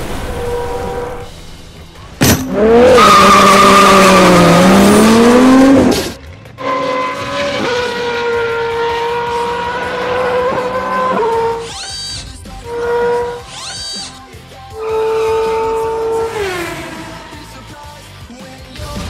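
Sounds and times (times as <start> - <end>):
loud tire squeal: 0.1 - 1.4, 2.5 - 14.2, 14.8 - 17.6.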